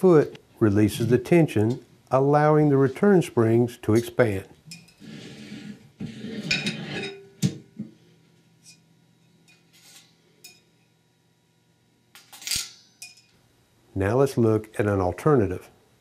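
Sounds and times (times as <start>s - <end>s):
steel parts clinking and rattling: 12.2s - 13.3s.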